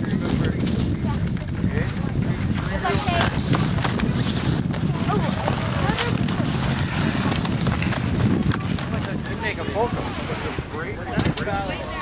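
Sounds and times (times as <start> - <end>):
wind buffeting microphone: 0.0 - 12.0
children chattering: 1.0 - 3.4, 4.8 - 12.0.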